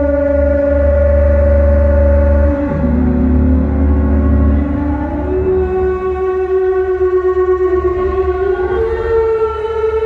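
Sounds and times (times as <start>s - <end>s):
electronic wind instrument note: 0.0s - 9.3s.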